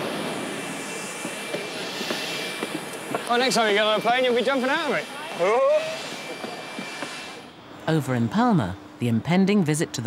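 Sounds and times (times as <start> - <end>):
jet turbine roar: 0.0 - 9.2
high turbine whine: 0.0 - 10.0.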